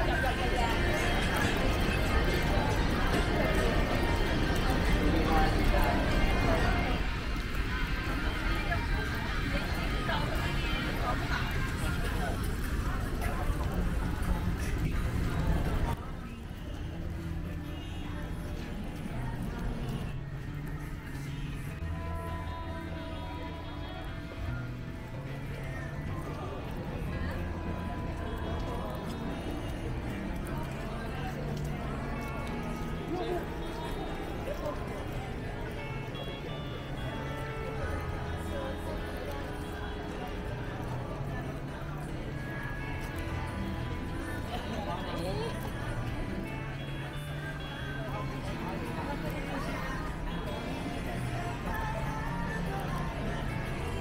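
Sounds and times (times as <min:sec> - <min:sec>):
crowd chatter: 0:00.0 - 0:54.0.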